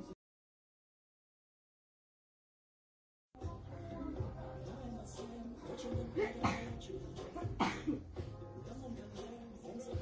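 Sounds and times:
soft background music: 3.4 - 10.0
person coughing: 6.2 - 6.8, 7.4 - 8.1.

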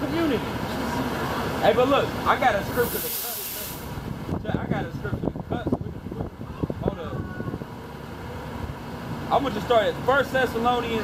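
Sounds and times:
bus engine rumble: 0.0 - 11.0
street traffic: 0.0 - 11.0.

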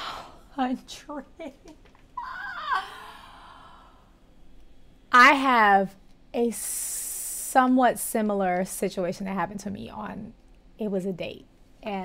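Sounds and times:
woman sighing: 2.2 - 4.1
faint breath: 2.8 - 4.2.

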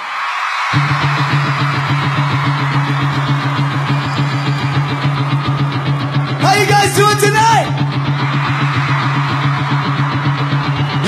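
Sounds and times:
person shouting: 6.4 - 7.8.

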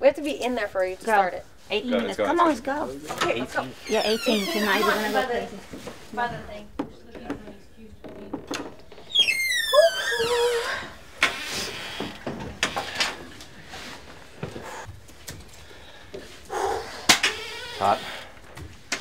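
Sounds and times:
wooden door creaking open: 3.8 - 5.4, 8.0 - 13.3, 17.2 - 18.7.

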